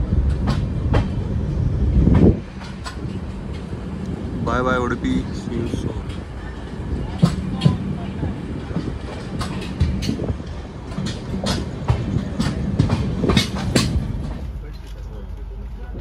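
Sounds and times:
train low rumble: 0:00.0 - 0:16.0
train wheels clicking over rail joints: 0:00.0 - 0:16.0.

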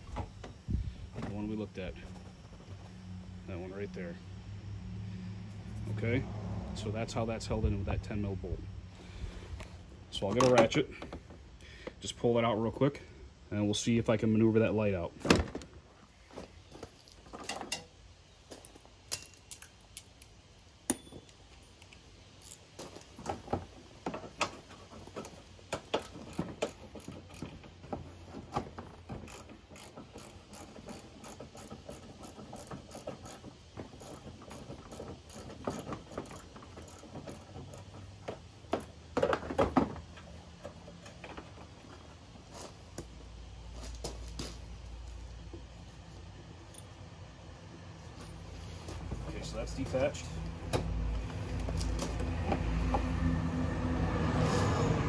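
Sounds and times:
hand ratchet clicking: 0:29.2 - 0:38.0.

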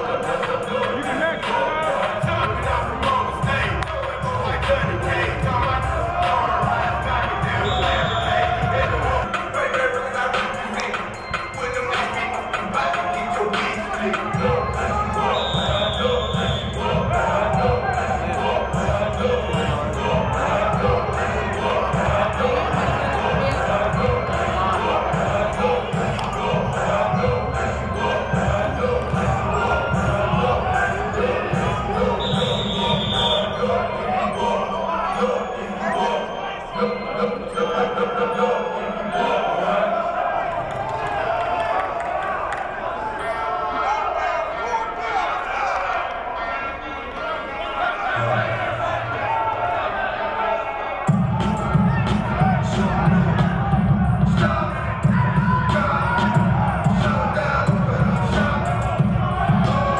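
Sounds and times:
football players shouting: 0:00.0 - 0:59.9
voices: 0:00.0 - 0:59.9
referee's whistle: 0:07.3 - 0:21.1, 0:28.0 - 0:39.8.

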